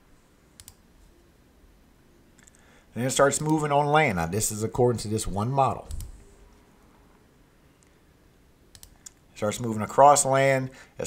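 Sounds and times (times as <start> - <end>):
computer mouse clicks: 0.6 - 0.8, 2.4 - 2.6, 8.7 - 9.2.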